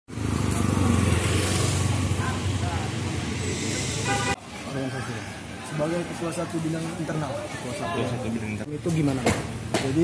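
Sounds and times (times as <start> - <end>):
motorcycle engine passing: 0.1 - 4.1.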